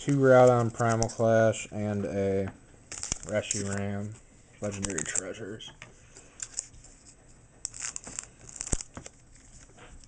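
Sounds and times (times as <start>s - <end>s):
foil wrapper crinkling and tearing: 2.9s - 4.0s, 7.6s - 9.8s.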